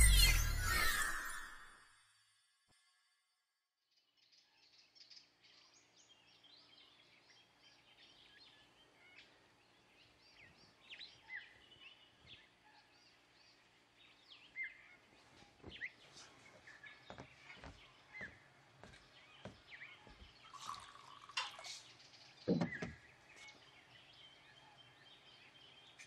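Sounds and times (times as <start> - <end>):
small birds chirping and whistling: 0.0 - 1.8, 4.3 - 26.0.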